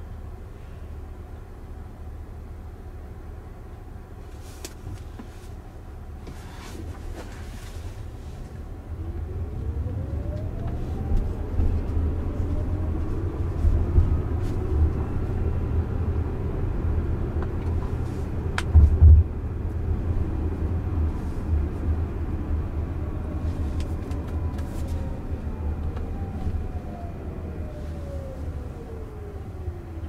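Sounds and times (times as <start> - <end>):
road and tyre rumble: 0.0 - 30.0.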